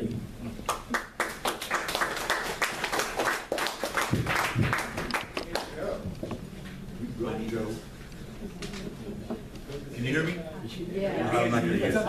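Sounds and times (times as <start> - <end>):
murmur of voices: 5.1 - 12.0.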